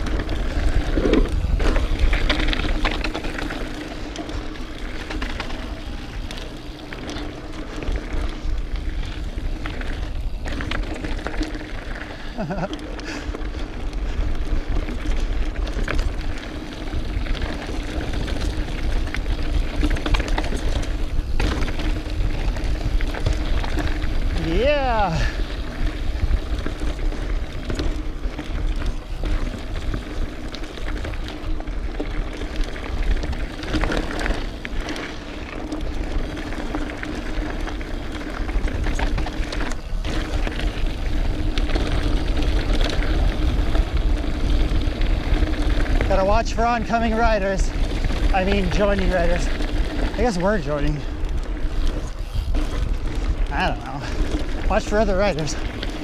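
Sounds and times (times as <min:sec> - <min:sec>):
bike knocks and rattles: 0:00.0 - 0:56.0
wind rumble on microphone: 0:00.0 - 0:56.0
rider shouting: 0:24.3 - 0:25.4.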